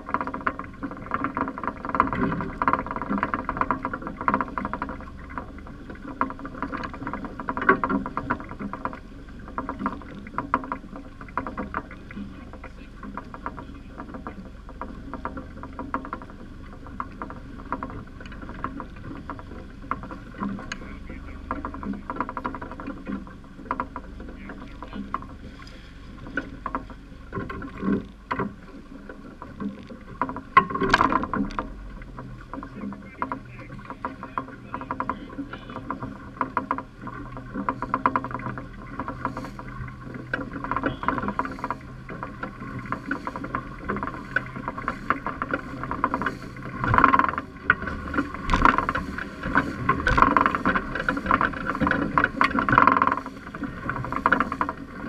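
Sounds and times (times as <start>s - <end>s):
waves slapping boat hull: 0.0s - 55.0s
wind: 0.0s - 55.0s.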